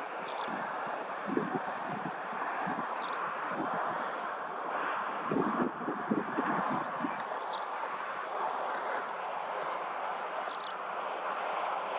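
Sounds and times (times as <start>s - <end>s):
steady rushing noise: 0.0s - 11.9s
small bird chirps: 2.9s - 3.2s, 7.3s - 7.8s, 10.5s - 10.8s.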